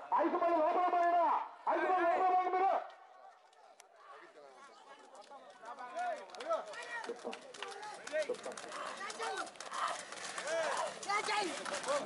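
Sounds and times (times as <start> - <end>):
hooves galloping on dirt road: 7.3 - 12.0.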